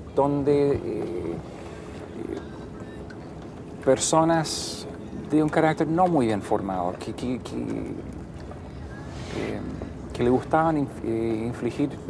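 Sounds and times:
man speaking: 0:09.3 - 0:12.0.

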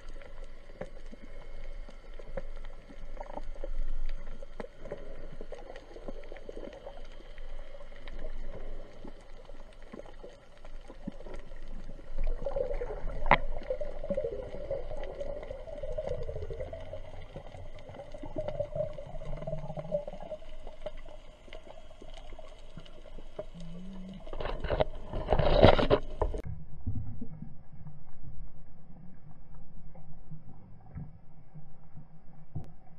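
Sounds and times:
underwater water movement: 0:00.0 - 0:32.9.

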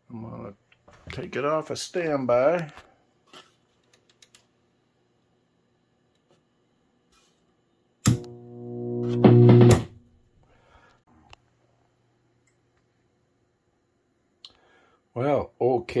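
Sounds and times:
electric guitar chords: 0:08.1 - 0:10.0
faint low amp hum: 0:08.1 - 0:14.3.

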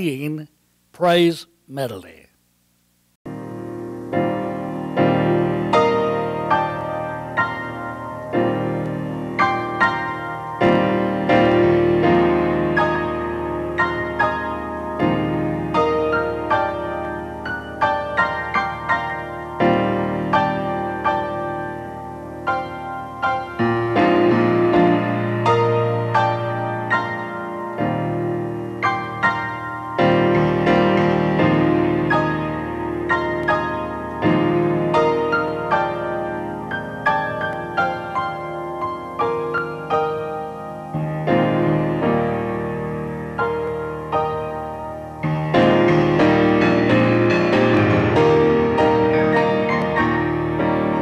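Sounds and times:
solo grand piano playing: 0:03.3 - 0:51.0.

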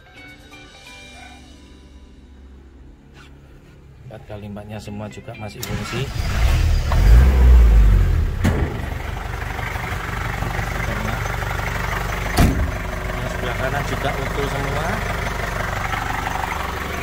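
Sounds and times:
diesel engine surging and idling: 0:05.6 - 0:17.0
sharp knocks: 0:12.3 - 0:12.8.

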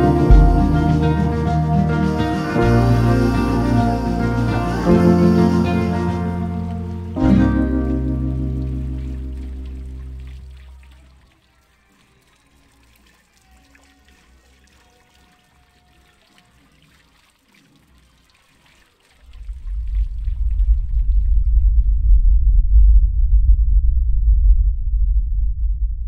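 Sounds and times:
deep rumbling sound effect: 0:00.0 - 0:10.6, 0:19.4 - 0:26.0
sustained music: 0:00.0 - 0:10.7
fountain water trickling: 0:00.0 - 0:21.0.

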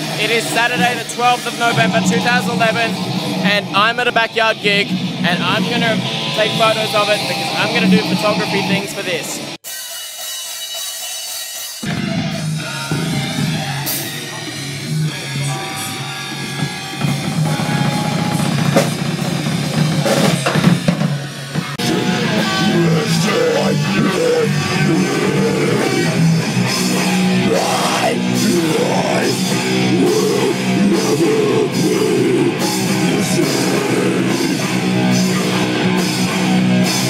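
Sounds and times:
metal band playing live: 0:00.0 - 0:37.0
person singing into microphone: 0:27.4 - 0:34.6.

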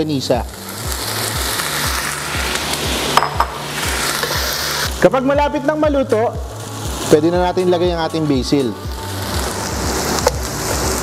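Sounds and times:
background music with low beat: 0:00.0 - 0:11.0
food sizzling in a pan: 0:00.0 - 0:11.0.

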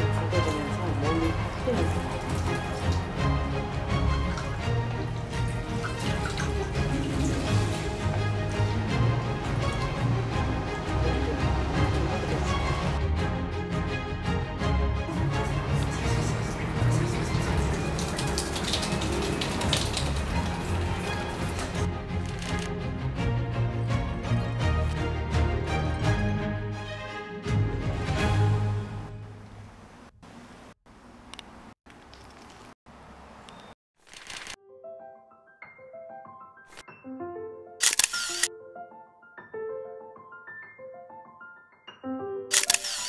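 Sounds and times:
sustained low music notes: 0:00.0 - 0:22.1
water splashing in basin: 0:00.4 - 0:08.8, 0:15.3 - 0:21.9.

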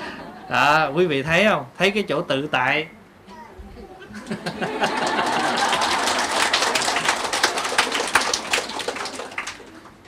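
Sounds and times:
audience clapping: 0:04.5 - 0:10.0.

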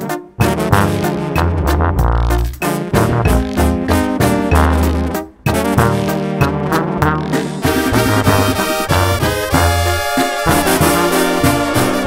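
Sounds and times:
brass section playing: 0:00.0 - 0:12.0
low bass line: 0:00.4 - 0:09.8.

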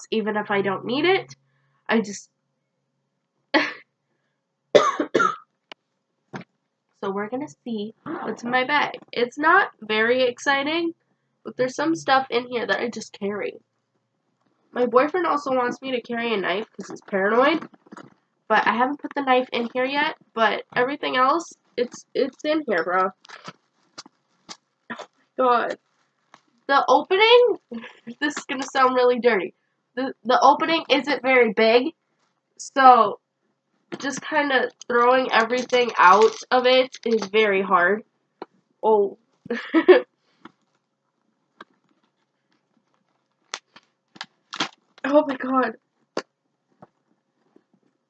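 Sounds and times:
small items clicking and knocking: 0:33.9 - 0:37.4, 0:41.6 - 0:45.1.

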